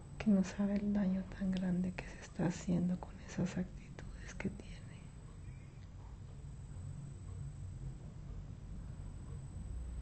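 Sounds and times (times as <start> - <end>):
low steady hum: 0.0 - 10.0
woman whispering softly: 0.2 - 5.2.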